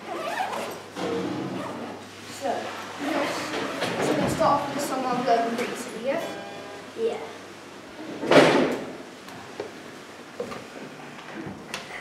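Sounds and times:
zip being pulled open: 0:00.1 - 0:00.8.

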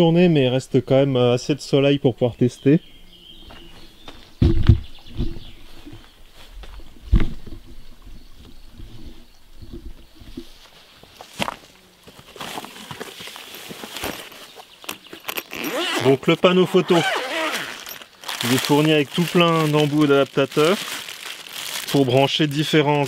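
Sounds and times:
footsteps on grass: 0:03.4 - 0:07.6, 0:10.2 - 0:14.8, 0:16.9 - 0:22.8
fabric rustling: 0:16.8 - 0:22.2.

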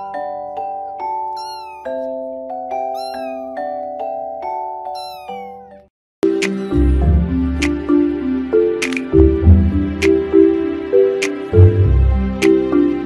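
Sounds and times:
kitten mewing: 0:01.3 - 0:02.0, 0:03.0 - 0:03.6, 0:05.0 - 0:05.7, 0:06.5 - 0:06.9
background music of struck notes: 0:06.2 - 0:13.0.

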